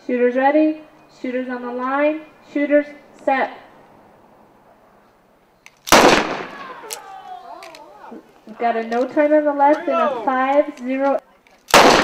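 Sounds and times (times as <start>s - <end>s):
revolver gunshot: 5.9s - 6.8s, 11.7s - 12.0s.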